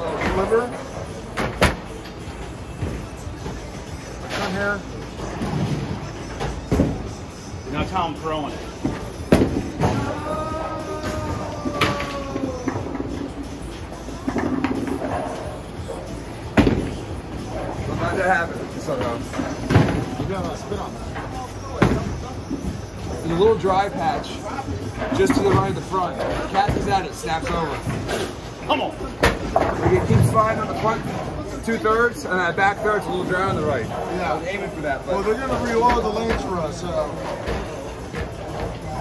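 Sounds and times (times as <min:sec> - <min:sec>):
background chatter: 0:00.0 - 0:39.0
background music: 0:00.0 - 0:39.0.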